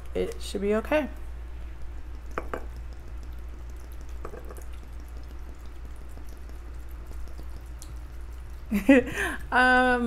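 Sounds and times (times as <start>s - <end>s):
low steady hum: 0.0s - 10.0s
liquid pouring into glass jar: 1.8s - 8.3s.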